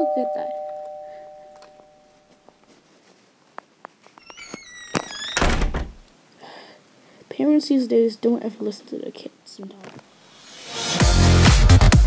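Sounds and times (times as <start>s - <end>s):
two-note doorbell chime: 0.0s - 2.2s.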